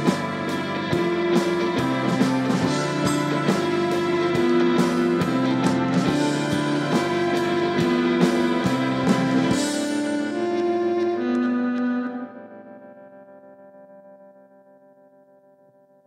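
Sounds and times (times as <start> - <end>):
drum kit strikes: 0.0 - 11.1
electric guitar chords: 0.0 - 16.0.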